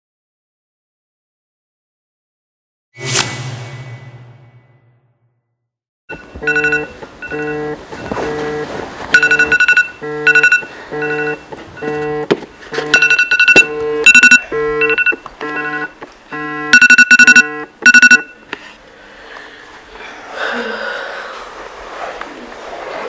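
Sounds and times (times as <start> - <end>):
rapid beeps: 6.1 - 8.1, 9.2 - 12.2, 12.9 - 18.4
phone alarm electronic tune: 6.1 - 18.4.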